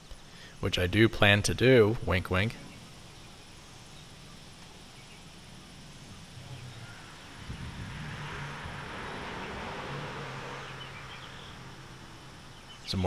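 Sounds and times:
soft hiss: 0.0 - 13.0
hornets buzzing: 2.5 - 13.0.

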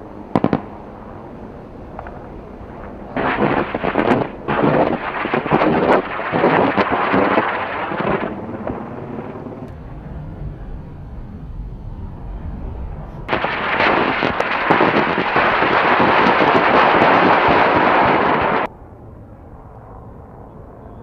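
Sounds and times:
rocket motor roaring: 1.9 - 18.7.

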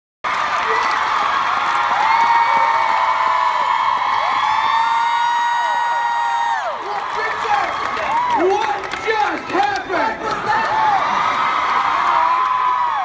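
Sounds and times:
crowd cheering and screaming: 0.3 - 13.0.

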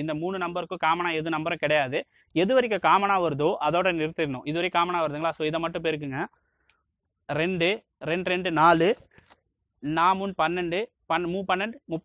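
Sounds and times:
man speaking: 0.0 - 6.3, 7.3 - 9.1, 9.8 - 12.0.

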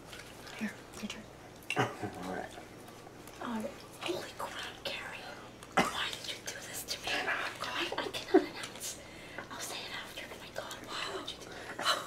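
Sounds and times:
quiet whispering: 3.4 - 12.0.

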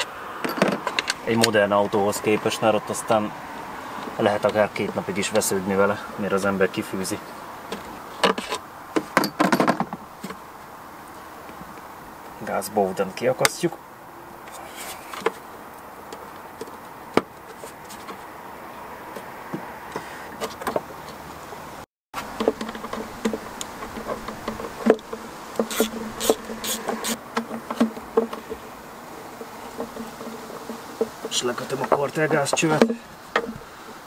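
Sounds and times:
insect buzzing: 22.2 - 34.0.

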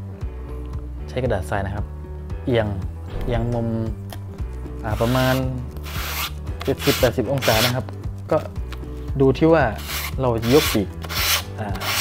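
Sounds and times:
sandpaper rubbing on foam: 4.9 - 7.8, 9.8 - 12.0.

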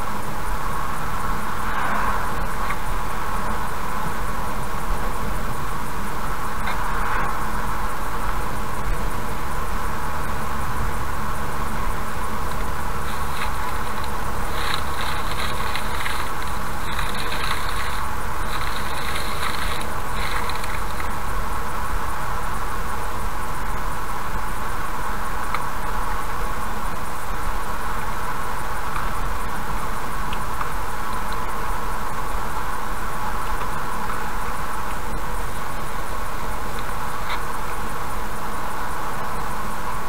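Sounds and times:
car road noise from inside: 0.0 - 23.9.

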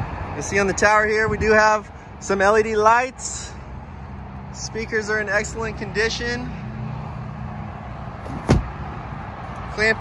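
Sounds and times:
distant road traffic rumble: 0.0 - 10.0.

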